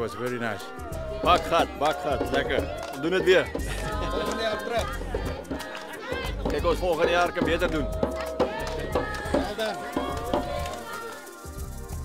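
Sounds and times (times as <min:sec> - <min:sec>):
man speaking: 0:00.0 - 0:05.0, 0:06.4 - 0:08.0
background music: 0:00.0 - 0:12.0.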